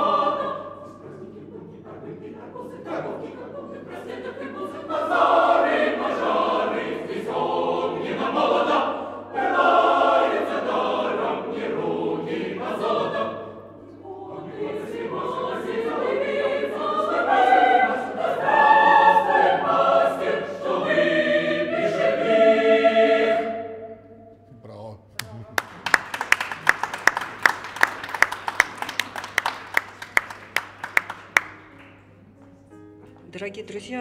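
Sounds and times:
choir singing a cappella: 0.0 - 24.4.

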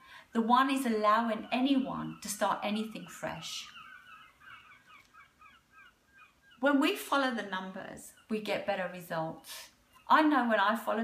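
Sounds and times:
short bird calls: 1.0 - 6.7.

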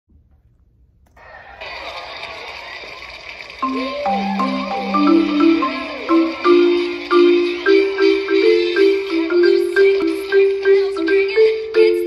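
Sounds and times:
crowd-like noisy wash: 1.2 - 11.1.

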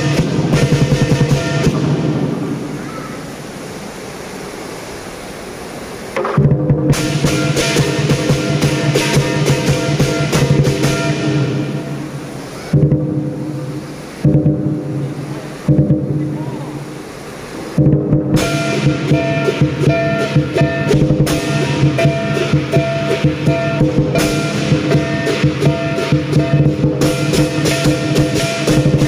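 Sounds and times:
gong ringing: 0.0 - 2.4, 6.9 - 13.3, 18.3 - 29.0
big drum beating: 0.0 - 2.9, 6.2 - 16.8, 17.6 - 29.0
cymbals crashing: 0.0 - 4.3, 6.1 - 29.0.

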